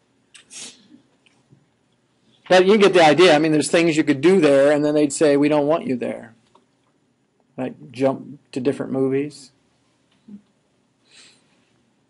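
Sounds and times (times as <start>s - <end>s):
person breathing puffs: 0.4s - 1.0s.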